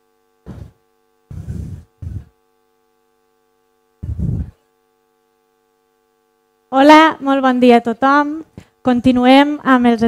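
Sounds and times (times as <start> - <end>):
electrical mains hum: 0.0 - 10.0
microphone handling thumps: 0.4 - 2.4, 4.0 - 4.6.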